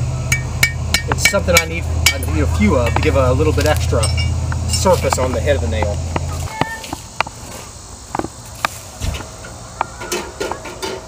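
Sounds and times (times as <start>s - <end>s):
faint insect buzz: 1.9s - 11.0s.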